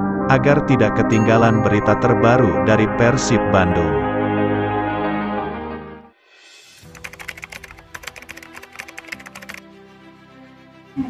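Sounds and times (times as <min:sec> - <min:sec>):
soft background music: 0:00.0 - 0:04.8, 0:06.3 - 0:11.0
keyboard typing clicks: 0:06.9 - 0:09.6.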